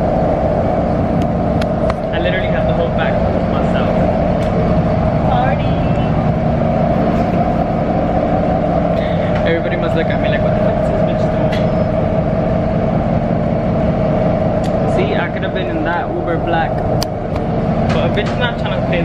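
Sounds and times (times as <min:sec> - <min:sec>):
bus engine drone: 0:00.0 - 0:19.0
constant hum: 0:00.0 - 0:19.0
road rumble: 0:00.0 - 0:19.0.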